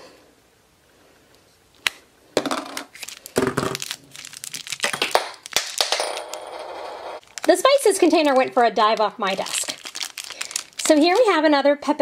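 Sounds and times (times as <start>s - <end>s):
container knocking on floor: 3.4s - 3.8s.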